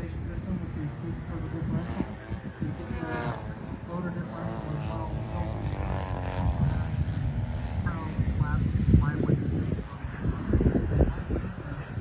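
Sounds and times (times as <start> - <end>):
model airplane motors rumbling: 0.0 - 12.0.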